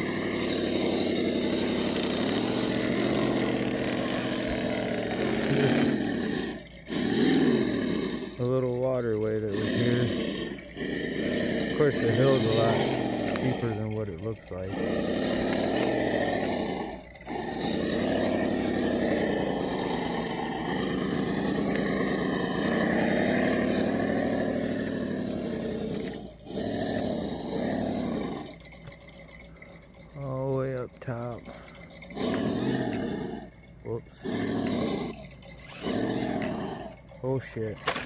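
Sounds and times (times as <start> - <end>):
toy car electric motor whining: 0.0 - 38.0.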